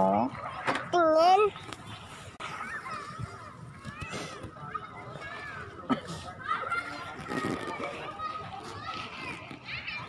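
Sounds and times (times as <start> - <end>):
children playing: 0.0 - 10.0.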